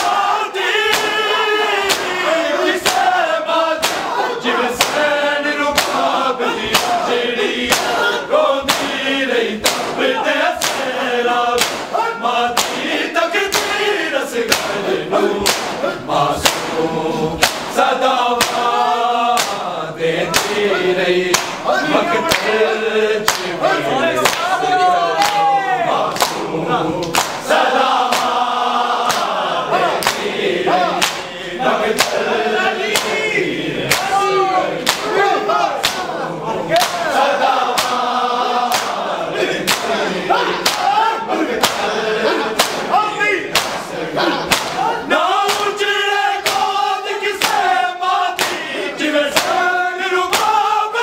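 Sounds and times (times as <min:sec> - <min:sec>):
men chanting in unison: 0:00.0 - 0:51.0
hands slapping bare chests: 0:00.8 - 0:02.2, 0:02.8 - 0:03.1, 0:03.8 - 0:04.2, 0:04.8 - 0:05.1, 0:05.7 - 0:09.0, 0:09.6 - 0:10.0, 0:10.6 - 0:11.0, 0:11.6 - 0:12.9, 0:13.5 - 0:13.8, 0:14.5 - 0:14.8, 0:15.4 - 0:16.8, 0:17.4 - 0:17.8, 0:18.4 - 0:19.7, 0:20.3 - 0:20.6, 0:21.3 - 0:21.6, 0:22.3 - 0:22.5, 0:23.2 - 0:23.6, 0:24.2 - 0:24.6, 0:26.1 - 0:29.4, 0:30.0 - 0:30.4, 0:31.0 - 0:31.3, 0:32.0 - 0:32.3, 0:32.9 - 0:33.2, 0:33.9 - 0:34.2, 0:34.8 - 0:35.2, 0:35.8 - 0:36.1, 0:36.8 - 0:38.1, 0:38.7 - 0:40.0, 0:40.6 - 0:41.0, 0:41.6 - 0:42.9, 0:43.5 - 0:43.9, 0:44.5 - 0:45.8, 0:46.4 - 0:46.8, 0:47.4 - 0:47.7, 0:48.4 - 0:48.6, 0:49.3 - 0:49.6, 0:50.3 - 0:50.6.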